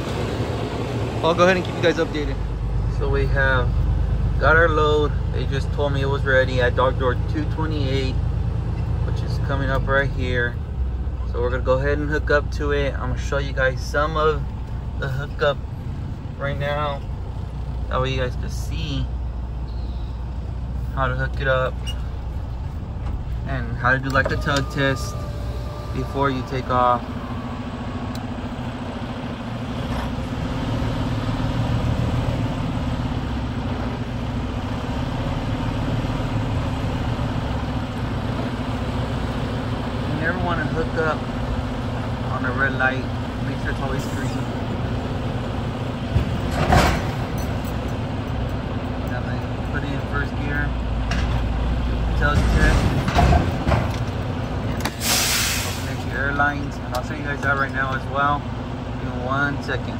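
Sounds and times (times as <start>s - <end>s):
diesel truck engine running: 0.0s - 59.9s
air hiss: 54.9s - 56.0s.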